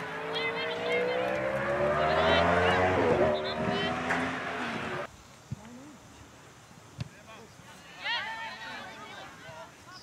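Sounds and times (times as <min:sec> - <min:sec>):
vehicle engine rising in pitch: 0:00.0 - 0:05.1.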